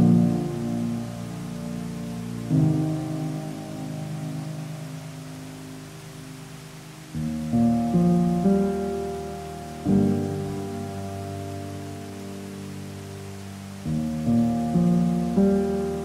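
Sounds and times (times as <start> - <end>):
slow solo piano: 0.0 - 16.0.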